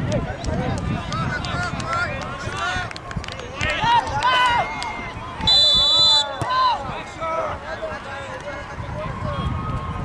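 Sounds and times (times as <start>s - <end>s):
people shouting and calling out: 0.0s - 10.0s.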